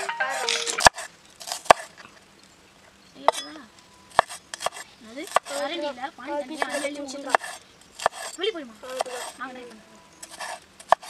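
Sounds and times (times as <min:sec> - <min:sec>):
knife chopping on wooden board: 0:00.3 - 0:01.9, 0:04.1 - 0:05.6, 0:06.6 - 0:09.4, 0:10.2 - 0:11.0.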